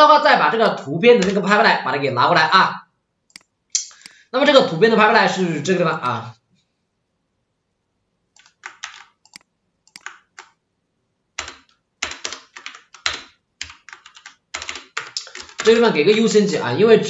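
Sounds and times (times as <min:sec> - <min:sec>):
computer keyboard typing: 0:01.2 - 0:01.4, 0:08.4 - 0:10.6, 0:11.4 - 0:16.5.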